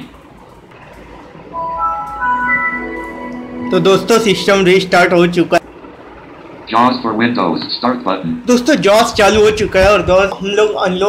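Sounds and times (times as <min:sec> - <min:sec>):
computer startup chime: 0:01.5 - 0:05.6.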